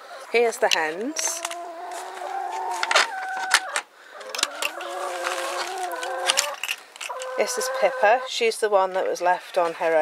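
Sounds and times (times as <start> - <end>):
hens calling: 0.0 - 8.9.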